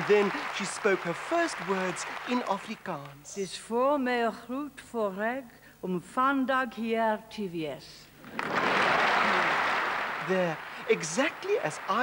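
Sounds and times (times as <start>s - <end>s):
audience applause: 0.0s - 2.9s, 8.2s - 12.0s.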